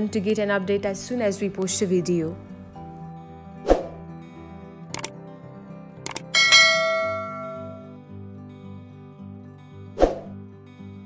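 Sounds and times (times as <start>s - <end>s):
soft background music: 0.0s - 11.0s
double mouse click: 4.9s - 5.1s, 6.1s - 6.3s
notification bell chime: 6.4s - 7.9s.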